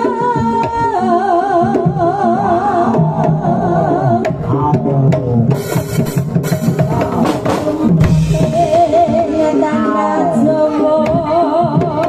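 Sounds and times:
hand drums drumming: 0.0 - 12.0
reedy shawm melody: 1.2 - 12.0.

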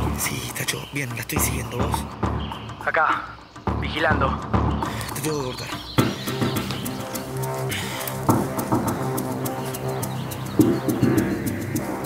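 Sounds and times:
steady ticking beat: 0.0 - 12.0.

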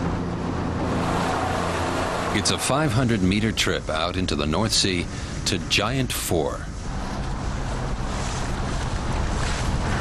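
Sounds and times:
boat engine humming: 0.0 - 10.0
water rushing: 0.0 - 10.0
wind buffeting microphone: 0.0 - 10.0.

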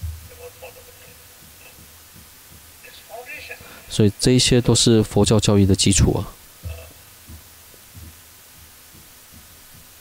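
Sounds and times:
soft low thumps: 0.0 - 0.5, 1.3 - 2.8, 6.5 - 10.0
faint low hum: 0.0 - 10.0.

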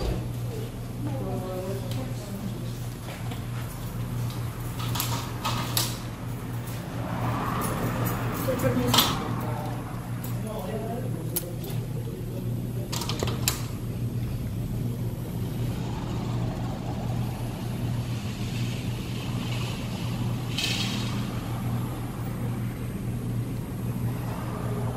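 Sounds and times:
steady low hum: 0.0 - 24.9.

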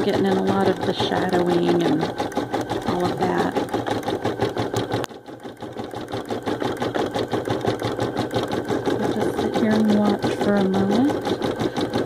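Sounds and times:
embroidery machine needle stitching: 0.0 - 12.0.

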